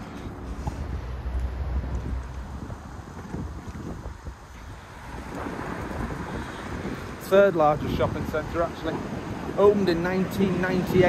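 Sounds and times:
road traffic hiss: 0:00.0 - 0:11.0
wind buffeting microphone: 0:00.0 - 0:11.0.

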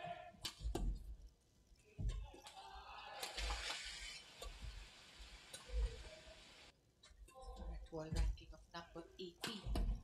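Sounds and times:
hiss: 0:03.4 - 0:06.7.

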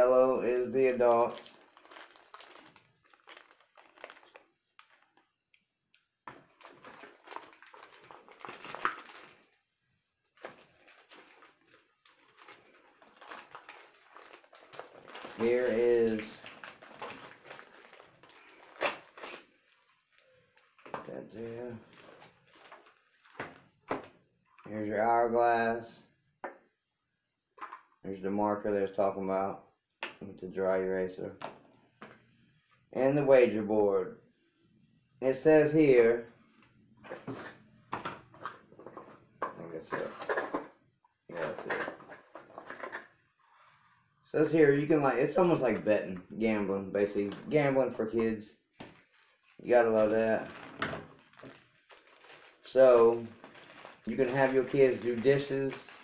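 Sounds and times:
packaging crinkling: 0:00.8 - 0:09.6, 0:10.2 - 0:24.1, 0:48.8 - 0:56.0.

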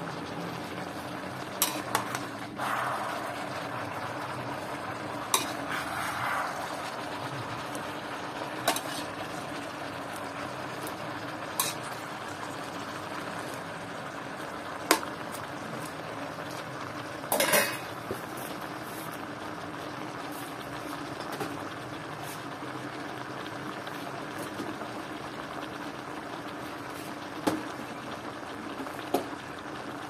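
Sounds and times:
food sizzling in a pan: 0:00.0 - 0:30.0
metal spatula scraping: 0:05.3 - 0:06.8, 0:08.7 - 0:09.1.

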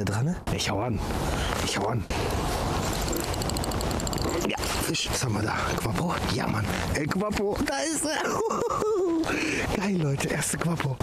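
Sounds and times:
steady rushing noise: 0:00.5 - 0:08.0
fishing reel ticking: 0:03.0 - 0:04.4.

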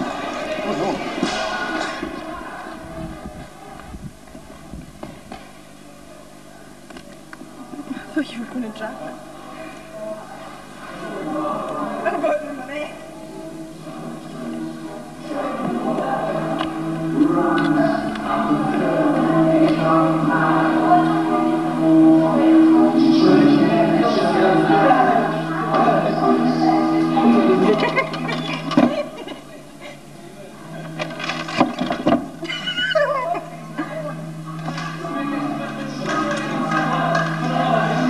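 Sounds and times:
choir singing held notes: 0:00.0 - 0:03.2, 0:13.1 - 0:29.3, 0:32.9 - 0:38.0.

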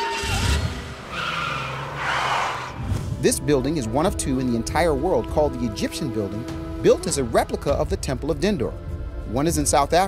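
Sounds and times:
rushing whoosh: 0:00.0 - 0:03.3.

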